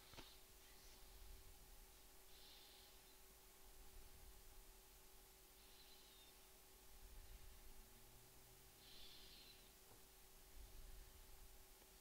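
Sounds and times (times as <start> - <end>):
low hum: 0.0 - 12.0
steady low hiss: 0.0 - 12.0.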